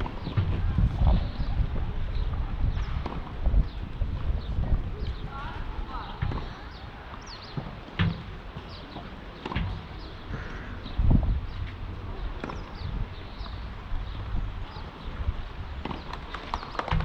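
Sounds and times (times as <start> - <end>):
wind buffeting microphone: 0.0 - 17.0
voices in background: 0.3 - 7.8.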